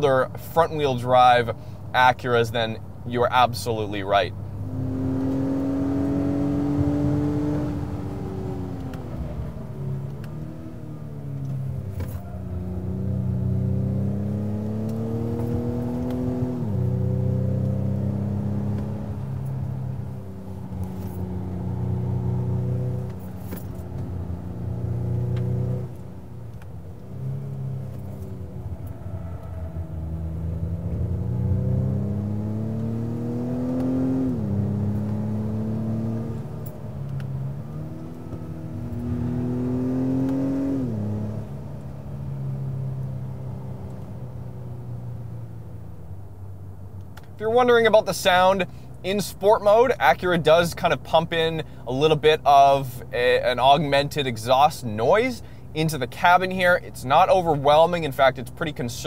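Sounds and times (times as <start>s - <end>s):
piped-in exhaust sound: 0.0s - 59.0s
car engine revving: 4.4s - 45.9s.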